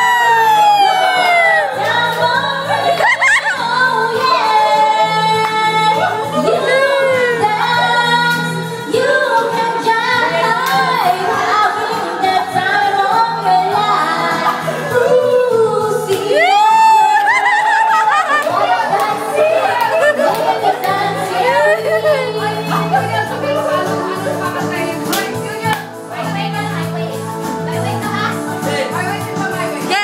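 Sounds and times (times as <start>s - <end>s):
karaoke backing music: 0.0s - 30.0s.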